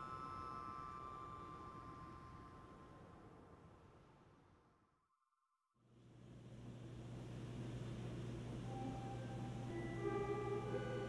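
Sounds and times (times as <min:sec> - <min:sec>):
steady low hum: 0:05.9 - 0:11.0
soft film score: 0:08.6 - 0:11.0.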